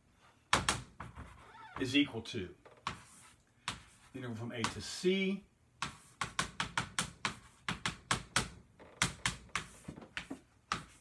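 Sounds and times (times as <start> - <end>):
chalk tapping and scratching: 2.8 - 5.1, 5.8 - 11.0.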